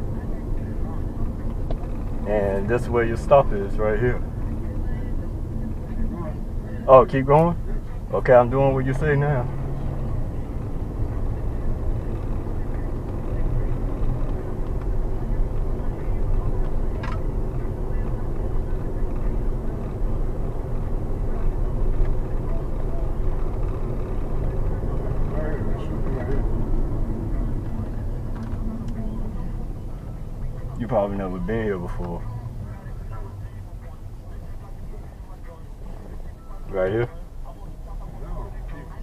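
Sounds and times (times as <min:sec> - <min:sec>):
car road and engine noise: 0:00.0 - 0:39.0.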